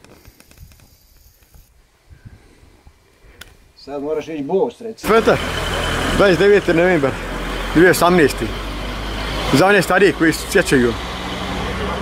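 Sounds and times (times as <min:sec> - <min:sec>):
faint hiss: 0:00.0 - 0:05.0.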